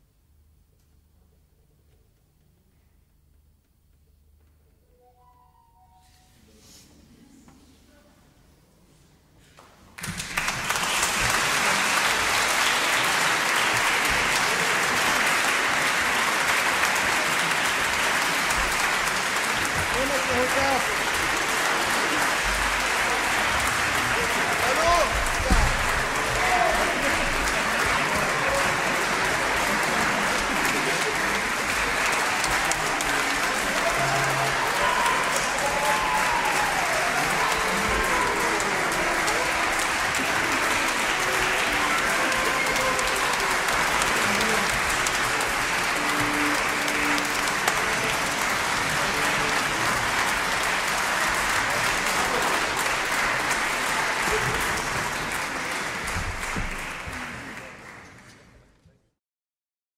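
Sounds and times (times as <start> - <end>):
audience applauding: 10.0 - 58.8.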